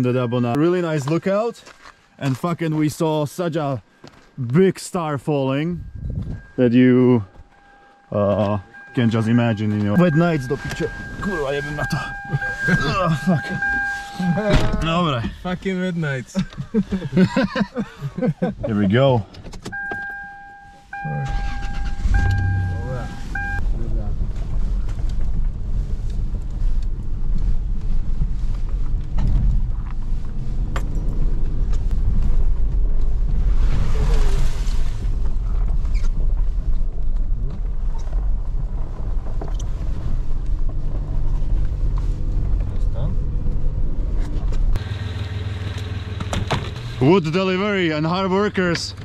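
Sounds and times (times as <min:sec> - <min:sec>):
engine and road rumble: 0:00.0 - 0:49.0
two-note vehicle warning chime: 0:05.4 - 0:14.9, 0:19.8 - 0:23.6.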